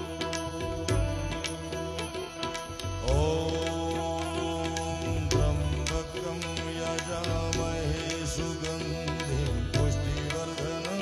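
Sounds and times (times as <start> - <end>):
harmonium drone: 0.0 - 11.0
tabla strokes: 0.0 - 11.0.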